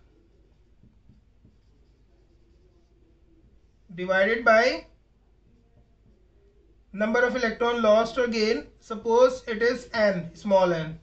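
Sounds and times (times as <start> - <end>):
marker writing on whiteboard: 0.0 - 10.8.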